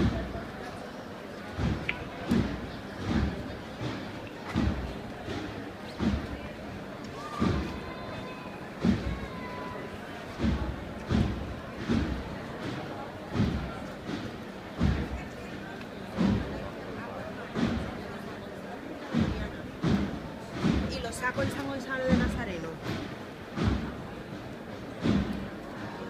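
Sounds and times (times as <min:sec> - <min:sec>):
crowd murmur: 0:00.0 - 0:26.0
spectators talking: 0:00.0 - 0:26.0
bass drum strokes: 0:01.6 - 0:06.5, 0:07.3 - 0:09.6, 0:10.3 - 0:16.8, 0:19.1 - 0:25.6
dull low thumps: 0:01.6 - 0:06.7, 0:10.3 - 0:16.8, 0:19.1 - 0:21.5, 0:22.1 - 0:25.6.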